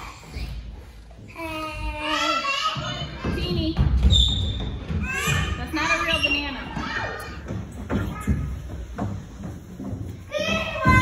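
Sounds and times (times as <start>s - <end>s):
children crying and calling: 1.3s - 3.5s, 4.9s - 7.5s, 10.3s - 11.0s.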